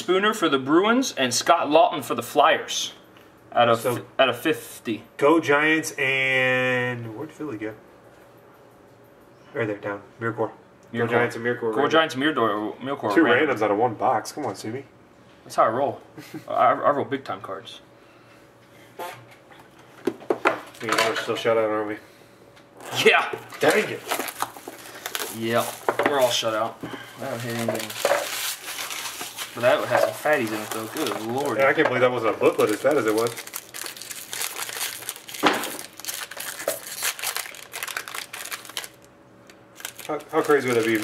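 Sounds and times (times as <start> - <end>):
foil wrapper crinkling and tearing: 22.9 - 41.0.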